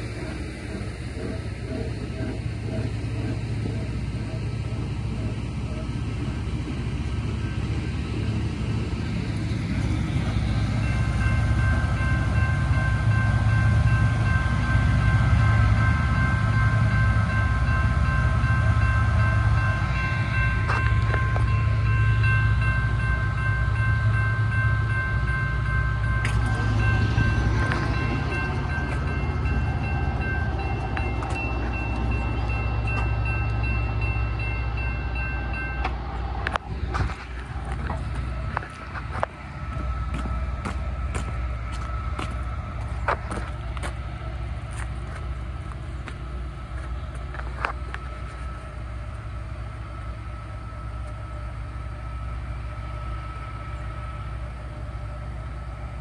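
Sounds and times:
train rolling past rumbling: 0.0s - 56.0s
high-pitched ringing tones: 10.0s - 36.4s.

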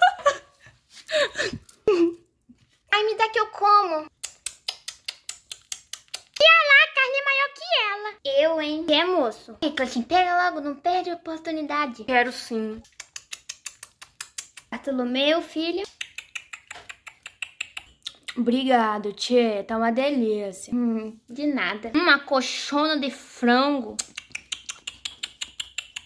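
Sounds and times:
rapid mouth smacking: 4.1s - 6.5s, 12.8s - 14.8s, 15.9s - 18.5s, 24.0s - 26.0s.

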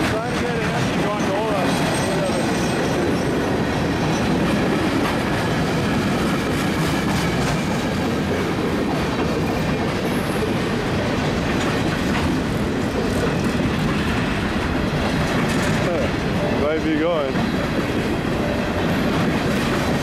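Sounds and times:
freight train wheels rolling: 0.0s - 20.0s
faint ticks of rail cars: 4.1s - 16.6s.

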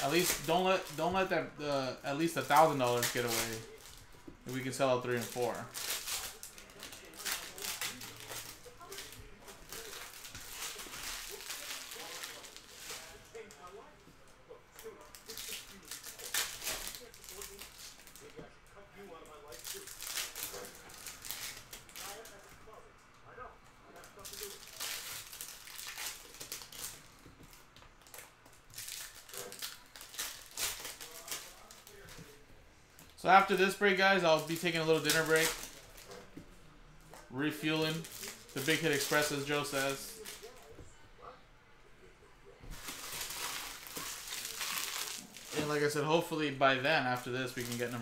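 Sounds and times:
foil packs tearing and crinkling: 0.0s - 13.6s, 14.8s - 18.3s, 19.5s - 22.4s, 24.0s - 27.1s, 28.0s - 32.2s, 33.4s - 36.1s, 37.4s - 40.5s, 42.8s - 46.0s, 47.1s - 48.0s
cards rustling: 0.0s - 13.8s, 24.0s - 40.8s, 42.7s - 48.0s.

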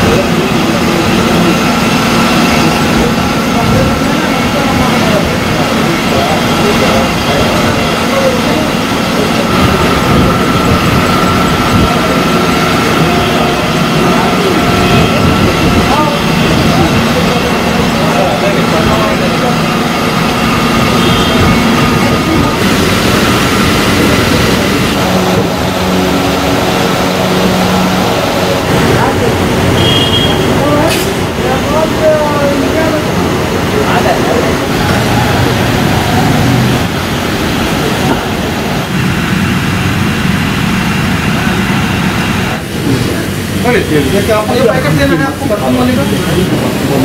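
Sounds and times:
indistinct voices: 0.0s - 47.0s
machine hum: 0.0s - 47.0s.

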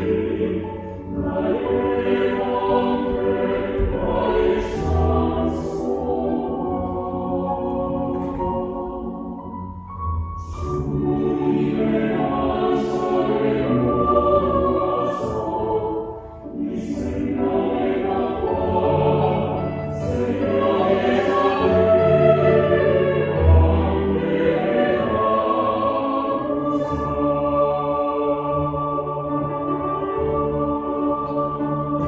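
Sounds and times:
mixed choir singing: 0.0s - 32.0s
piano accompaniment: 0.0s - 32.0s.

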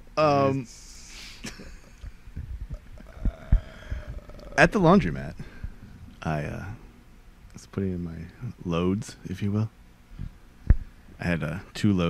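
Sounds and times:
microphone handling thumps: 2.0s - 4.4s, 5.3s - 6.1s, 10.2s - 11.0s.

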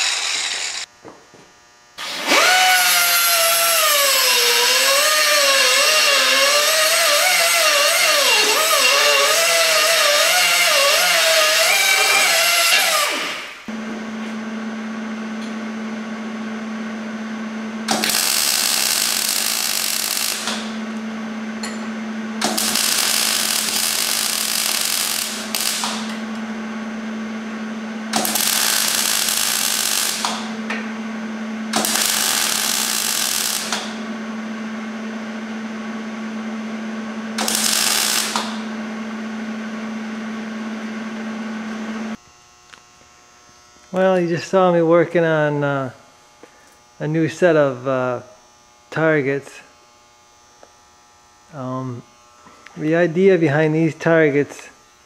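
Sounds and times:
hand grinder cutting steel: 0.0s - 0.9s, 2.0s - 13.6s, 17.9s - 20.7s, 22.4s - 26.2s, 28.2s - 30.4s, 31.8s - 33.9s, 37.4s - 38.6s
welder hissing: 0.0s - 0.9s, 2.1s - 13.7s, 17.9s - 20.8s, 22.4s - 26.2s, 28.1s - 30.5s, 31.7s - 34.0s, 37.4s - 38.7s
steady low hum: 13.5s - 55.0s.

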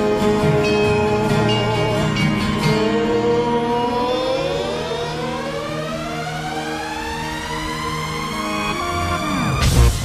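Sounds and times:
live rock music: 0.0s - 5.2s
rising siren-like glide: 0.0s - 10.0s.

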